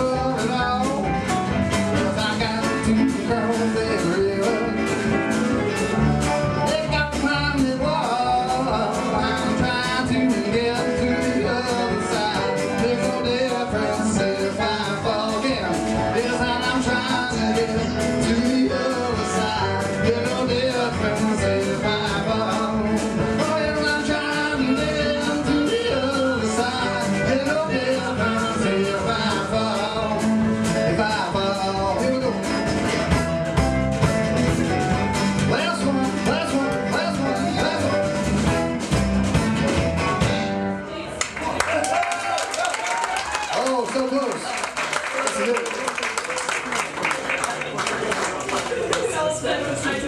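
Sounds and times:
lead vocal singing: 0.0 - 5.2, 6.6 - 32.6
drum kit beat: 0.0 - 40.8
upright bass: 0.0 - 42.1.

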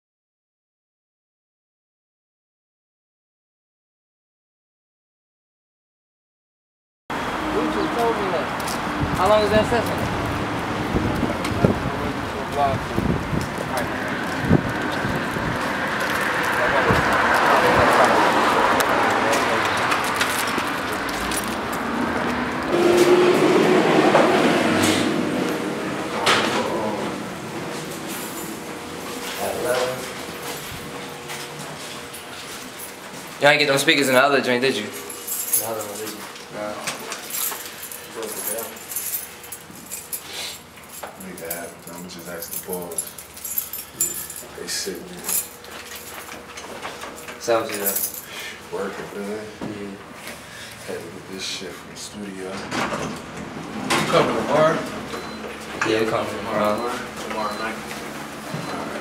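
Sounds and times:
city street noise: 7.1 - 59.0
indistinct voices talking: 7.2 - 31.7, 53.6 - 59.0
metallic jingling and clinks: 34.8 - 36.2, 37.0 - 48.6.

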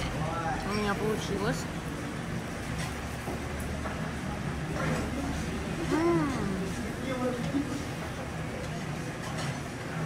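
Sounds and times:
faint voices: 3.9 - 10.0.

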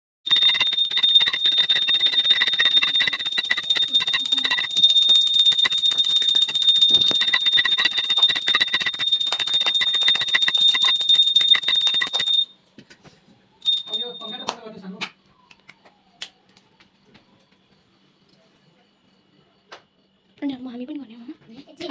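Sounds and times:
hand bell ringing rapidly: 0.3 - 12.5, 13.6 - 14.5.

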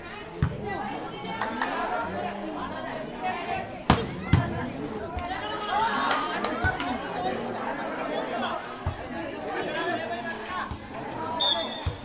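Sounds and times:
spectators chattering and shouting: 0.0 - 12.0
volleyball being struck: 3.9 - 4.5.

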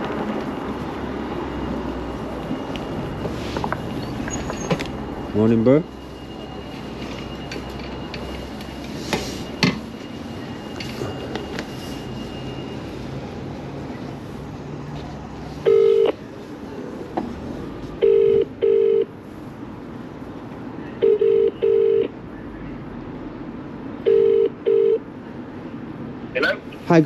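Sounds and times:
phone ringback tone: 15.6 - 16.2, 18.0 - 19.1, 21.0 - 22.1, 24.1 - 25.0.

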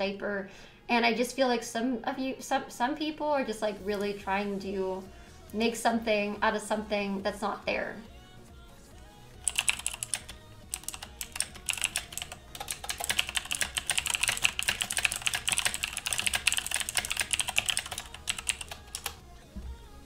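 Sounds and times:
typing on computer keyboard: 9.4 - 19.2.

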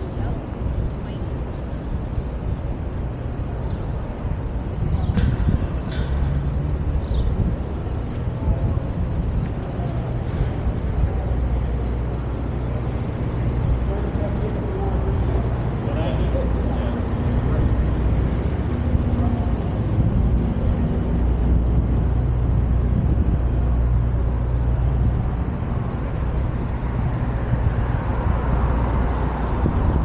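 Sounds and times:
vehicle engine hum: 0.0 - 30.0
faint voices: 7.5 - 23.0.

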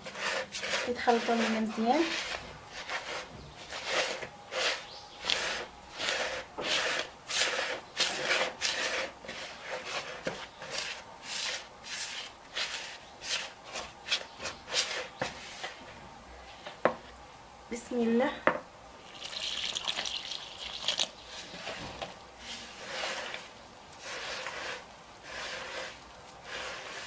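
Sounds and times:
hand stirring dry flour mix: 0.0 - 15.9, 19.0 - 27.0.

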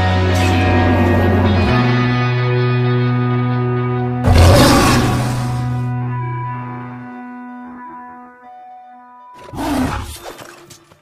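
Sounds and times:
lion roaring: 4.2 - 5.8, 9.4 - 10.3.

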